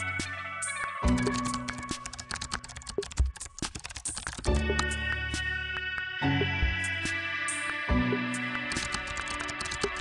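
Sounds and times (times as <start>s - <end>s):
instrumental background music: 0.0s - 10.0s
rapid irregular clicking: 1.2s - 4.9s, 8.7s - 10.0s.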